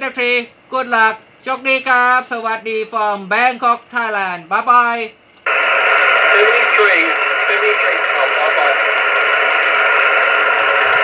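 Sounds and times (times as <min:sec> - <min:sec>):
radio receiver hiss: 0:05.4 - 0:11.0.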